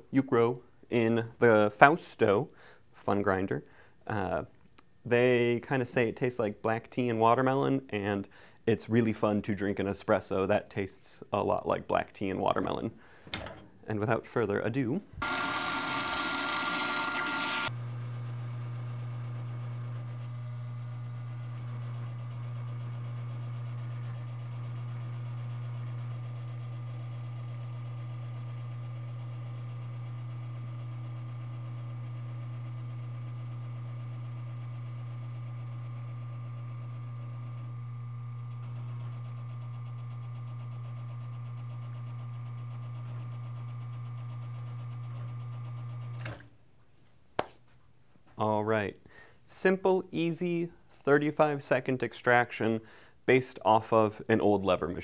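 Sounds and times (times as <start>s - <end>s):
coffee grinder grinding: 15.2s - 46.3s
espresso machine pump humming: 15.2s - 46.5s.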